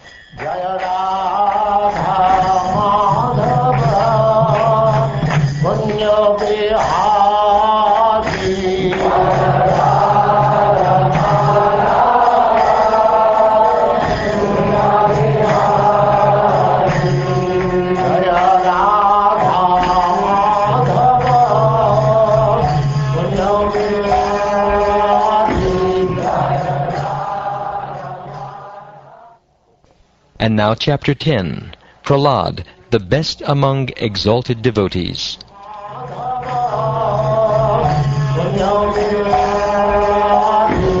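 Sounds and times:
music: 0.0s - 29.8s, 35.4s - 41.0s
voices chanting: 6.0s - 29.4s.

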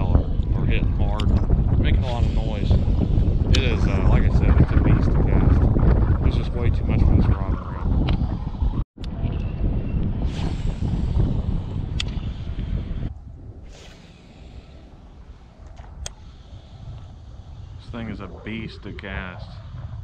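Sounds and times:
wind buffeting microphone: 0.0s - 20.0s
sharp clicks: 12.0s - 12.2s.

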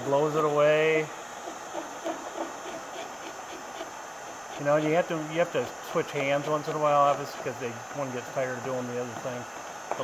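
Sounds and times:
heat gun fan blowing: 0.0s - 10.0s
scraper scratching paint: 1.4s - 5.2s.

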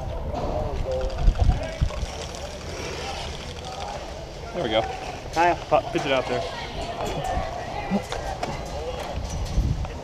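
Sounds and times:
distant voices talking: 0.0s - 10.0s.

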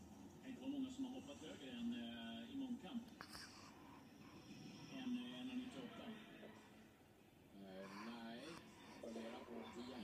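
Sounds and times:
sports commentator on television: 0.0s - 3.6s, 4.2s - 10.0s.

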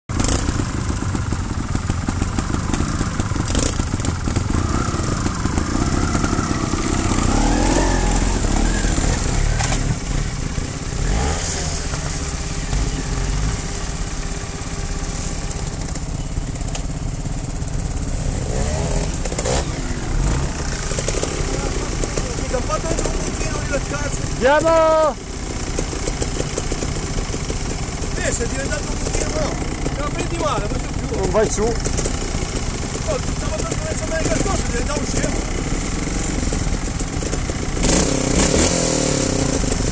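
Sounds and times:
motorcycle engine revving: 0.1s - 39.9s.

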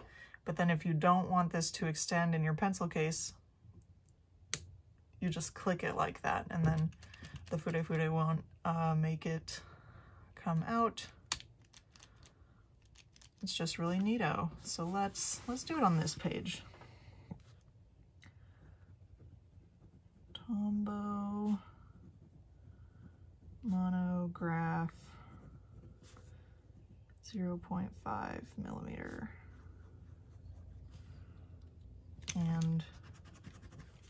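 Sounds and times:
pencil scratching on paper: 32.8s - 34.0s.

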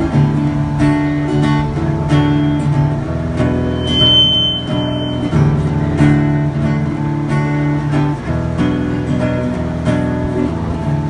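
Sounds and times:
acoustic guitar strumming: 1.8s - 8.2s
steady high tone: 3.4s - 5.8s.

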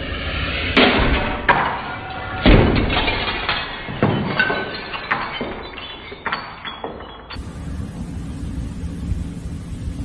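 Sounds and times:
things crashing and breaking: 0.8s - 7.3s
low steady rumble: 7.4s - 10.0s.

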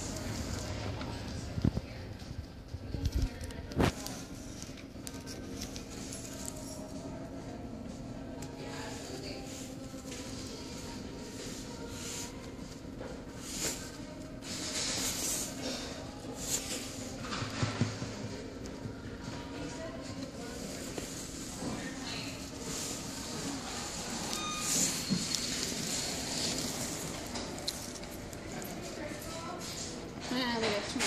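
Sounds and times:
steady low hum: 0.0s - 14.4s
short beep: 24.3s - 25.2s.

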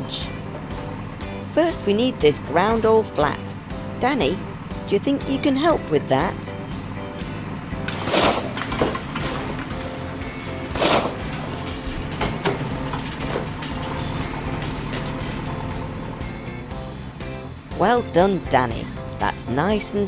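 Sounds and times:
background music: 0.0s - 20.0s
bulldozer engine running: 0.0s - 20.0s
rubble being shoved: 7.9s - 9.5s, 10.4s - 11.6s.

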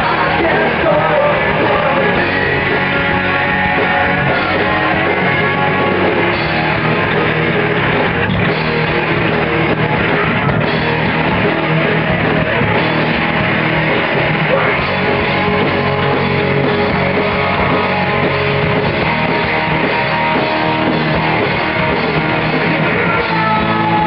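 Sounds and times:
rock band playing live: 0.0s - 24.0s.

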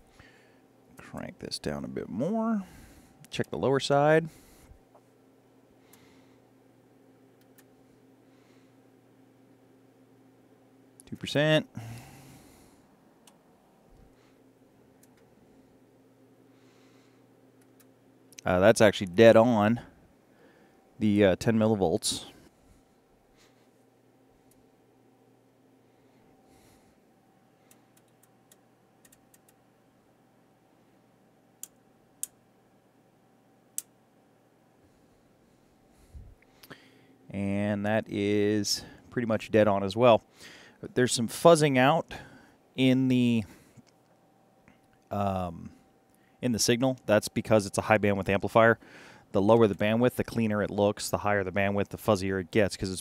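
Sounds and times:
faint electrical hum: 0.0s - 53.0s.

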